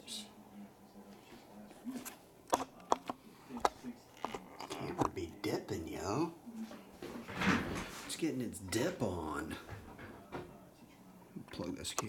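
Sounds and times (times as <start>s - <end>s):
handling noise: 1.8s - 6.0s
plastic dice clicking on a table: 2.5s - 5.2s.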